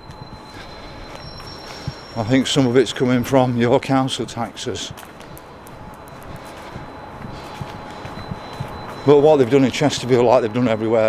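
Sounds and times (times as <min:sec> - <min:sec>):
faint distant traffic: 0:00.0 - 0:11.0
street background hum: 0:00.0 - 0:11.0
soft low thuds: 0:05.8 - 0:09.2.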